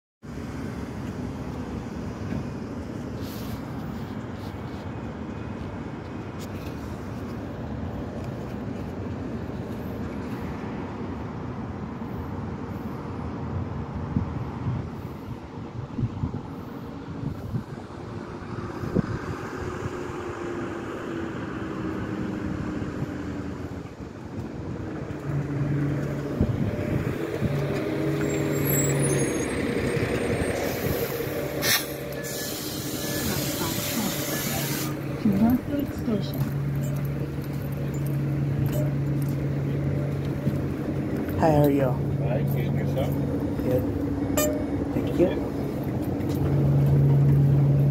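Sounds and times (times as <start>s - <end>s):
bus engine humming: 0.2s - 47.9s
air brakes hissing: 27.7s - 35.2s.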